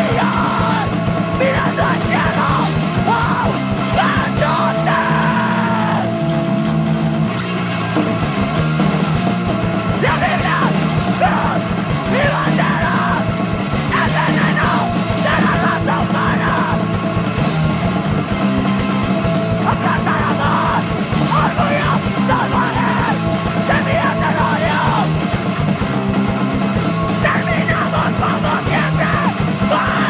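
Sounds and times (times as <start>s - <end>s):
shouted vocals: 0.0s - 6.2s, 9.9s - 16.9s, 19.6s - 25.2s, 26.9s - 30.0s
distorted punk band playing: 0.0s - 30.0s.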